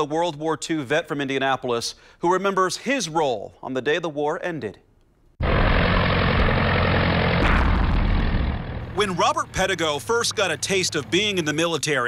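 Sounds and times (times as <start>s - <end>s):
heavy rushing noise: 5.4s - 9.5s
propeller aircraft engines droning: 5.4s - 12.0s.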